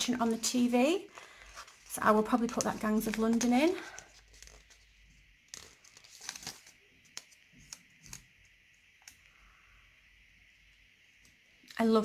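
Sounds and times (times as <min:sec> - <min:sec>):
sticker sheet crinkling: 0:01.1 - 0:09.2.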